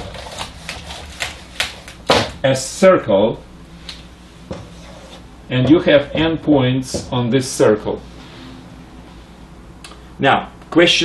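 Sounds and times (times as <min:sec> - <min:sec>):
eraser rubbing whiteboard: 0:04.6 - 0:05.3.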